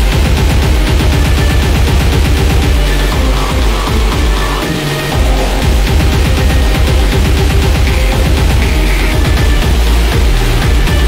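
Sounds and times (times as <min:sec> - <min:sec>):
dense synth layers: 0:00.0 - 0:11.0
fast kick-drum beat: 0:00.0 - 0:11.0.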